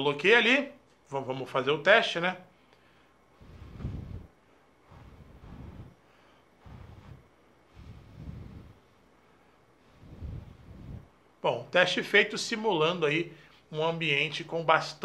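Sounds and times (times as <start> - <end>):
breath puffs on microphone: 2.6 - 11.3
low wind noise on microphone: 3.4 - 8.9, 9.8 - 11.2.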